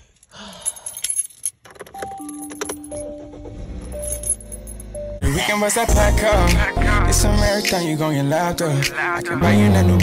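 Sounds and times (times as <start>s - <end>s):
keys jangling: 0.1s - 3.2s, 3.8s - 5.0s.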